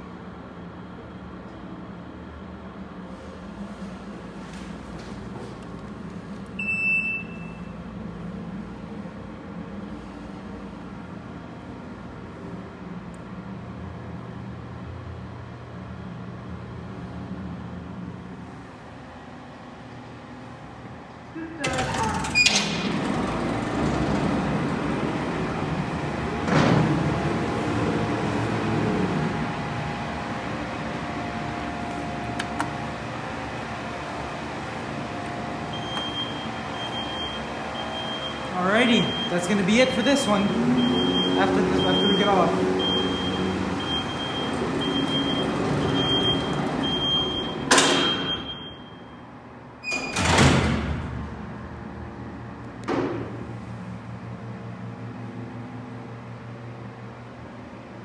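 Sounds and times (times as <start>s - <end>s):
mechanical rumble and rattle: 0.0s - 38.5s, 42.8s - 58.0s
elevator humming: 0.0s - 58.0s.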